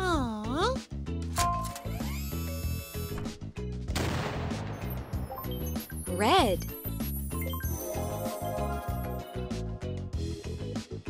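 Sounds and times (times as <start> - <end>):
background music: 0.0 - 11.0
cartoon cannon shot: 3.9 - 5.2.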